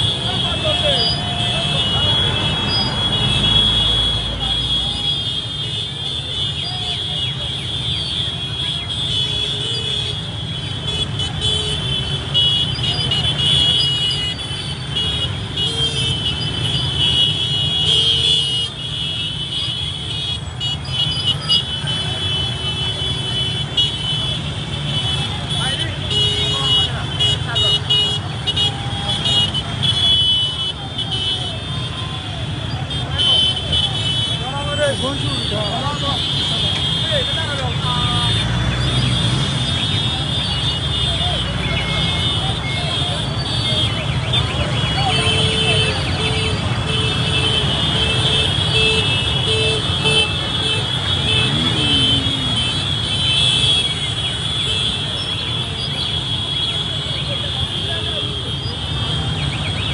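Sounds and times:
voices shouting in crowd: 0.0 - 5.4, 51.2 - 53.3
motorcycle and car engines running: 47.6 - 54.6
shrill high-pitched horns tooting: 49.5 - 55.3.

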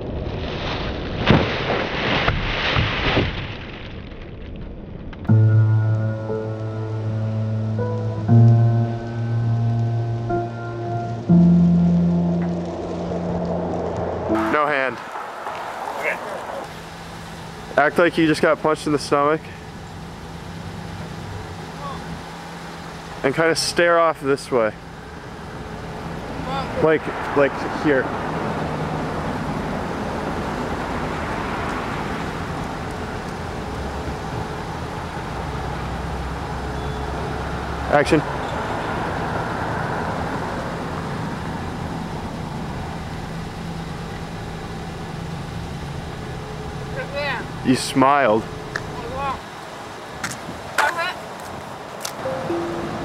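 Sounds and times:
heavy vehicle rumble: 0.0 - 53.0
low sustained music chord: 5.3 - 15.2, 52.2 - 53.0
road traffic noise: 5.3 - 53.0.

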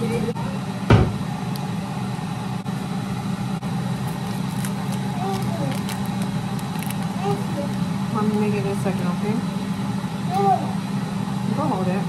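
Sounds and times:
kitchen appliance humming: 0.0 - 12.0
faint children's voices: 5.1 - 6.0, 7.1 - 7.8, 10.3 - 10.8.

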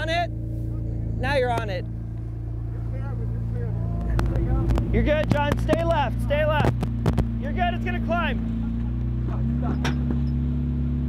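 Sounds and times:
faint voices: 0.0 - 10.0
engine running at low revs: 0.0 - 11.0.

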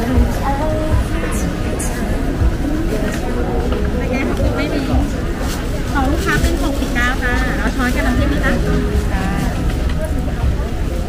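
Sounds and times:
people talking: 0.0 - 11.0
steady low rumble: 0.0 - 11.0.

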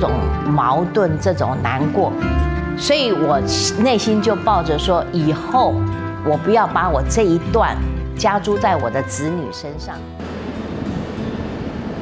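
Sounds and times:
sea surf rushing: 10.2 - 12.0.

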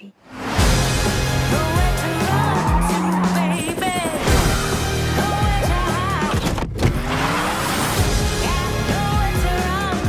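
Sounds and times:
trailer music: 0.2 - 10.0
car engine revving: 0.6 - 10.0.

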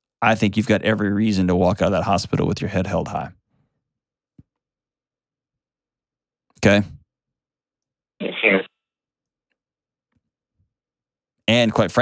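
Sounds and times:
man speaking into microphone: 0.2 - 3.4, 6.6 - 7.0, 11.5 - 12.0
voice through telephone line: 8.2 - 8.7.

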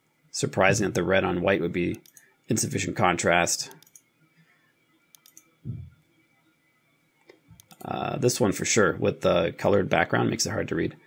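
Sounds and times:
computer mouse clicks: 3.7 - 4.1, 5.1 - 5.5, 7.2 - 7.9
person speaking: 7.6 - 11.0.

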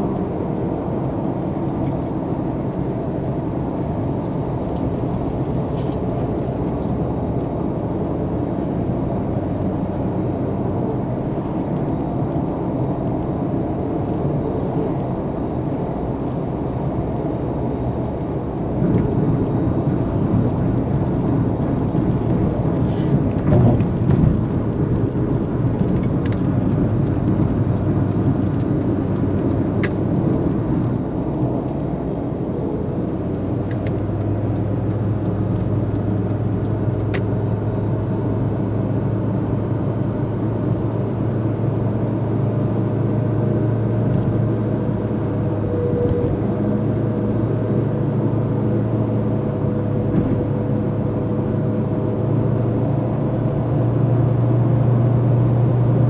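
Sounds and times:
road and engine noise in car: 0.0 - 56.0.

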